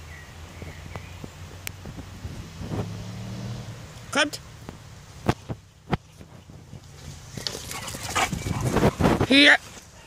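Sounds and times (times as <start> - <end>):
dogs rustling through grass: 6.0 - 10.0.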